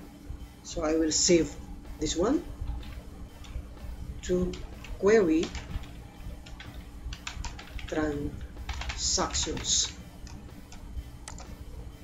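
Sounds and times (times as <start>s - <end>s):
keyboard typing clicks: 4.4s - 11.6s.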